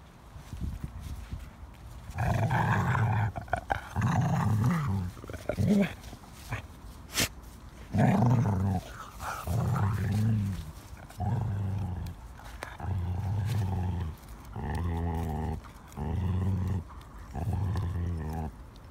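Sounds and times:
dog growling: 0:02.1 - 0:06.7, 0:07.9 - 0:18.9.

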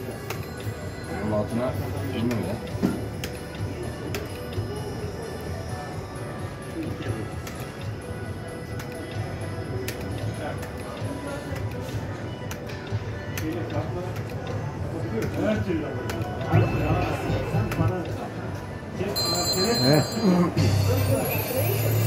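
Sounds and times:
slot machine music and chimes: 0:00.0 - 0:02.7, 0:16.5 - 0:18.1, 0:19.0 - 0:22.0
murmur of voices: 0:00.0 - 0:22.0.

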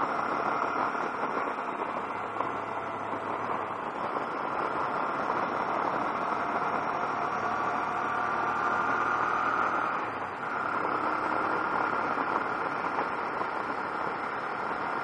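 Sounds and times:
motorcycle engine running: 0:00.0 - 0:15.0.

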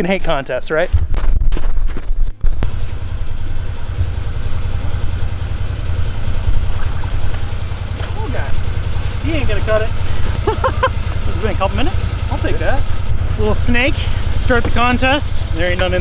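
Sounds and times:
utility vehicle engine idling: 0:02.6 - 0:16.0.

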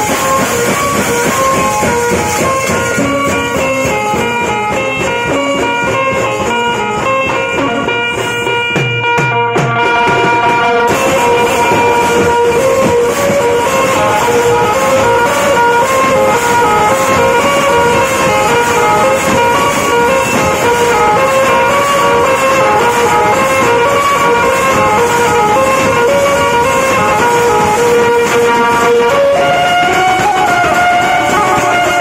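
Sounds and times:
fast loud drumming: 0:00.0 - 0:32.0
held melodic line: 0:00.0 - 0:32.0.

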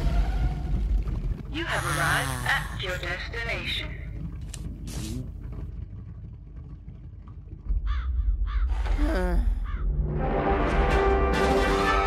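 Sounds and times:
deep rumble: 0:00.0 - 0:10.3
caw-like squawks: 0:07.9 - 0:08.8
music: 0:09.8 - 0:12.0.

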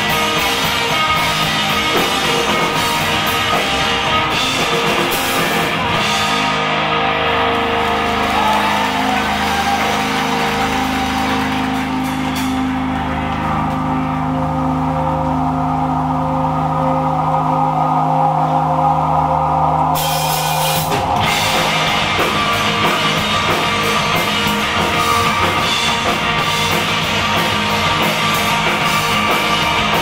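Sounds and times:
rock band playing: 0:00.0 - 0:30.0.

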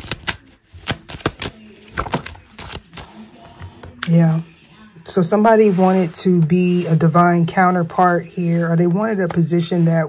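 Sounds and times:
cards being shuffled: 0:00.0 - 0:04.2.

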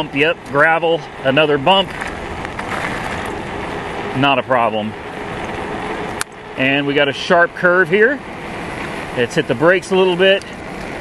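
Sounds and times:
tyres rolling over gravel: 0:00.0 - 0:11.0.

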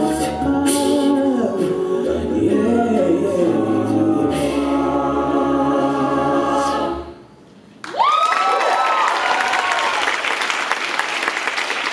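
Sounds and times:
a cappella group singing: 0:00.0 - 0:07.4
applause: 0:07.8 - 0:11.9.

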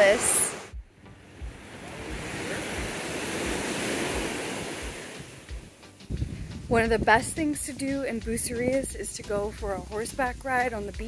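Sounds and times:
ocean wave washing on sand: 0:00.0 - 0:00.7, 0:01.4 - 0:05.5.

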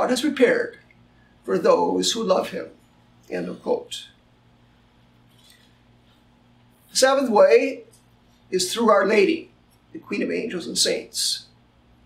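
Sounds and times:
man speaking: 0:00.0 - 0:00.8, 0:01.5 - 0:04.2, 0:06.9 - 0:11.6
low electrical hum: 0:00.0 - 0:12.0.

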